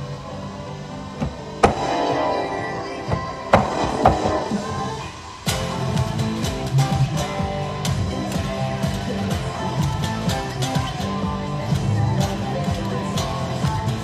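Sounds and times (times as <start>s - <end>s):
electric guitar strumming chords: 0.0s - 14.0s.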